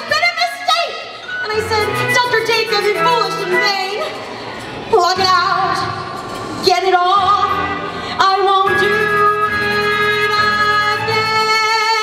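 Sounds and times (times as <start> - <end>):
instrumental accompaniment: 1.2 - 12.0
young woman singing show tune: 8.2 - 12.0.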